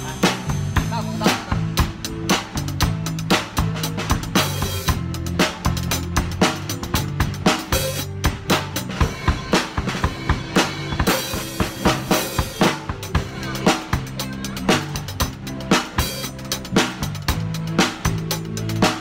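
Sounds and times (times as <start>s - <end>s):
backing song: 0.0s - 19.0s
drum kit groove: 0.0s - 19.0s.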